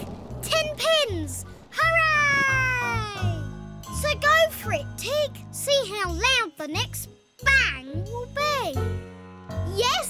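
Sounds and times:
girl calling out: 0:01.0 - 0:04.2
soft background music: 0:01.3 - 0:10.0.

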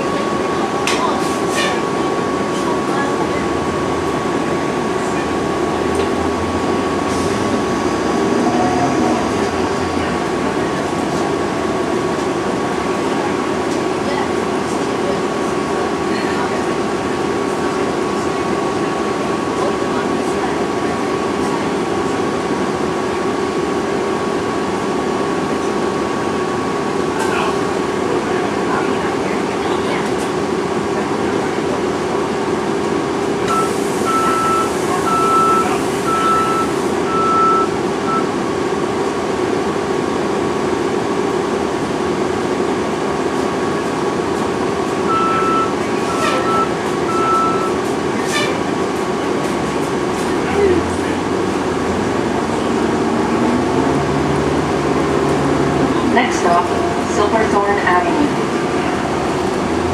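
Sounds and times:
reversing alarm beeping: 0:33.5 - 0:38.3, 0:45.1 - 0:47.8.

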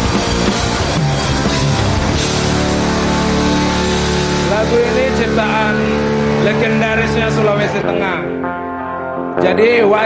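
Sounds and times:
band droning chord: 0:00.0 - 0:09.9
person talking: 0:04.4 - 0:08.4.

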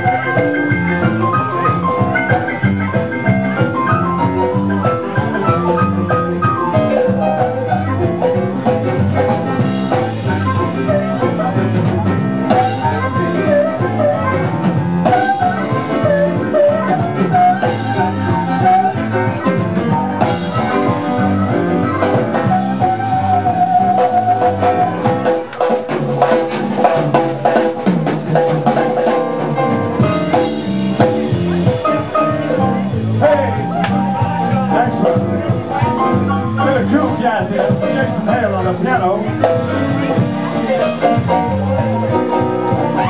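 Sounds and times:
blues-rock band playing: 0:00.0 - 0:43.0.

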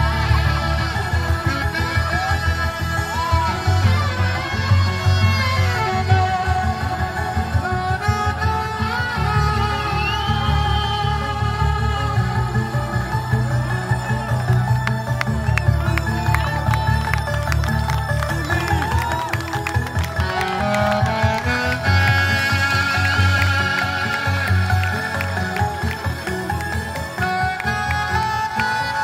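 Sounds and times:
electronic dance track: 0:00.0 - 0:29.0
pulsing bass line: 0:00.0 - 0:29.0
saxophone melody: 0:00.0 - 0:29.0.

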